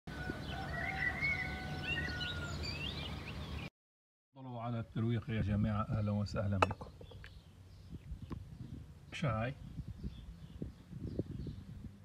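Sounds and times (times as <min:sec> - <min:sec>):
small birds chirping: 0:00.4 - 0:03.7, 0:05.2 - 0:12.0.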